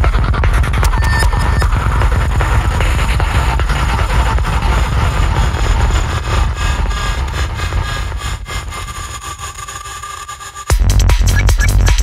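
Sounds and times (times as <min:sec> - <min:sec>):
dense electronic texture: 0:00.0 - 0:11.9
heavy rumbling bass drone: 0:00.0 - 0:12.0.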